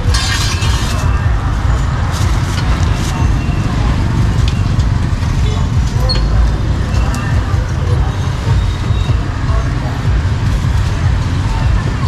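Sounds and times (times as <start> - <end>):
motorbike engines: 0.0 - 12.0
street traffic rumble: 0.0 - 12.0.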